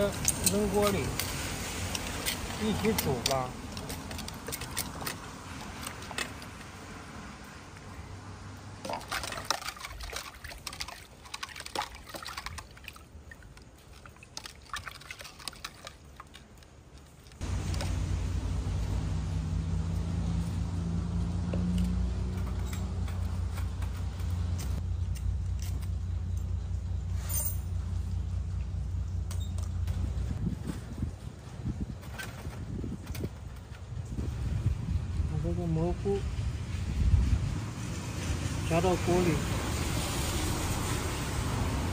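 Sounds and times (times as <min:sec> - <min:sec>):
low rumble with faint hum: 0:17.3 - 0:32.0.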